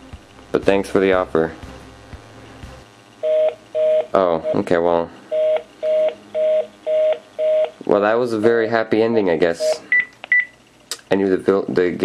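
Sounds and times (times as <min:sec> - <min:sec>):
phone busy signal: 0:03.2 - 0:07.8, 0:09.6 - 0:10.5.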